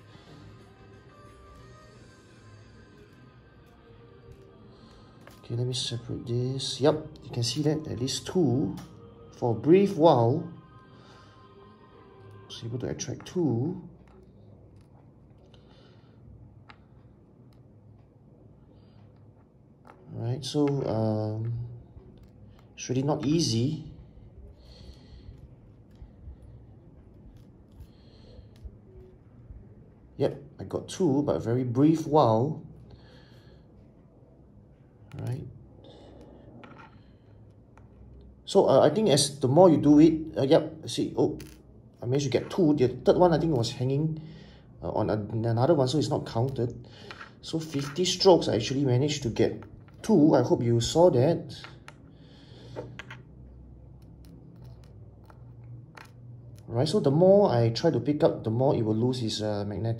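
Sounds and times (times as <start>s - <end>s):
room hum: 0.0s - 59.9s.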